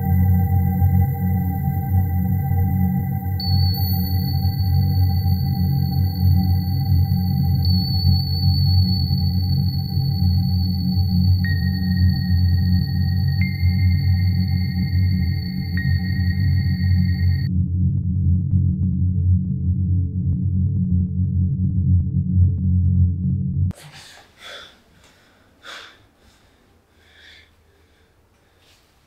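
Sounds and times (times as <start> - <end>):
high thin ringing tones: 0.0 - 17.5
low ambient drone hum: 0.0 - 23.8.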